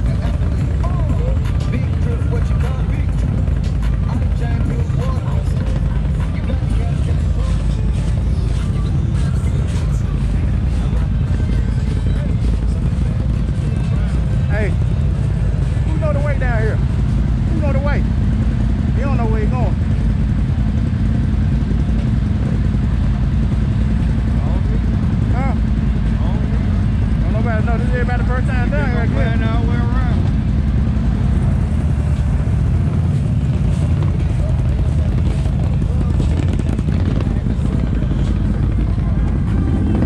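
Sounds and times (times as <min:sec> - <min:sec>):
atv engines rumbling: 0:00.0 - 0:40.0.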